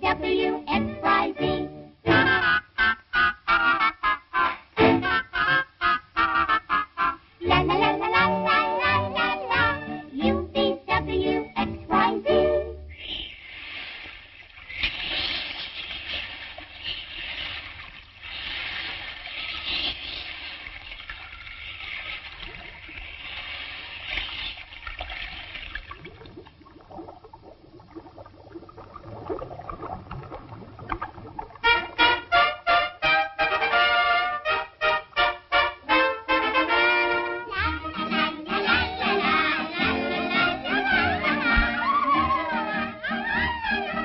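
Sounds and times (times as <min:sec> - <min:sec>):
orchestral music: 0:00.0 - 0:02.6, 0:04.7 - 0:05.8, 0:07.4 - 0:12.9, 0:31.7 - 0:44.0
rushing water: 0:13.4 - 0:32.9.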